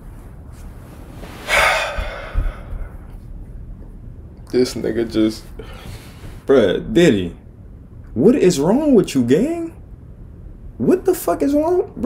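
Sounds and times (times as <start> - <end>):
man breathing out loudly: 1.4 - 3.0.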